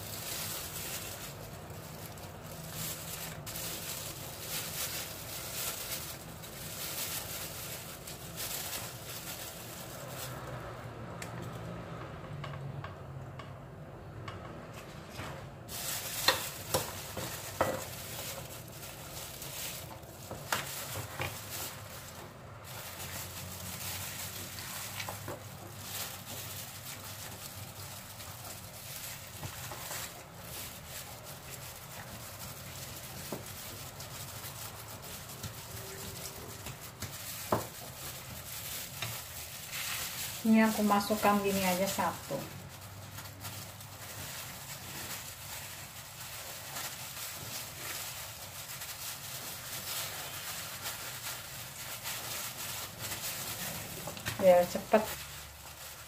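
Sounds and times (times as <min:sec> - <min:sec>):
leaves and plastic glove rustling: 0:00.0 - 0:10.8, 0:15.6 - 0:56.0.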